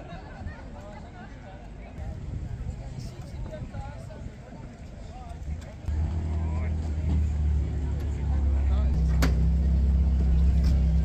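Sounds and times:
crowd chatter: 0:00.0 - 0:11.0
car engine idling: 0:05.9 - 0:11.0.

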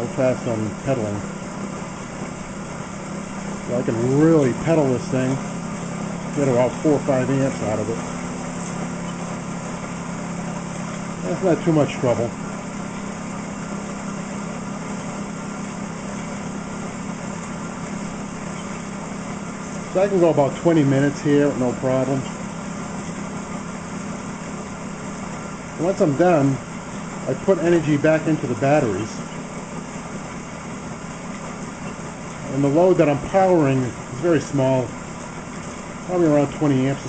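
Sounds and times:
flywheel and alternator whirring: 0:00.0 - 0:37.0.

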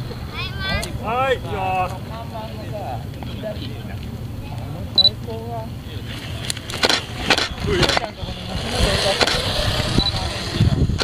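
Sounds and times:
people talking indistinctly: 0:00.3 - 0:11.0.

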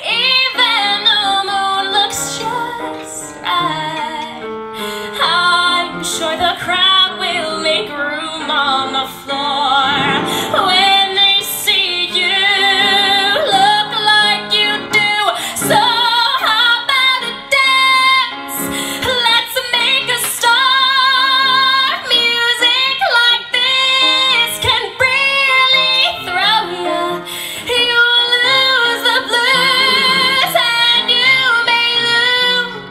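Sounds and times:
woman singing into a microphone: 0:00.0 - 0:32.9.

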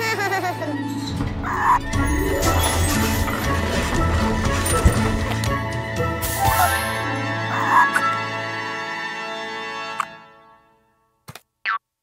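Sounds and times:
children's background music: 0:00.0 - 0:10.4.

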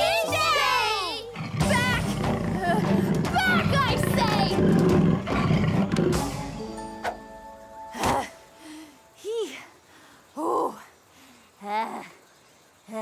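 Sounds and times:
background music: 0:00.0 - 0:09.4.

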